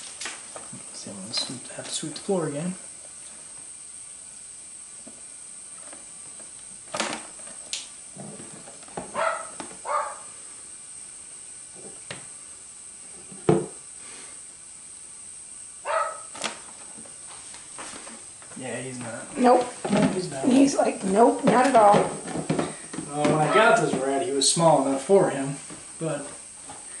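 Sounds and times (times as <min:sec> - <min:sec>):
knocks and scrapes in plastic tub: 0:19.6 - 0:24.0.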